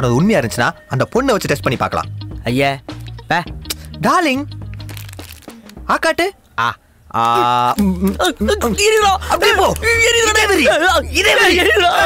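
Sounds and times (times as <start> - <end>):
speech: 0.0 - 4.5, 5.9 - 12.0
man exclaiming: 6.6 - 12.0.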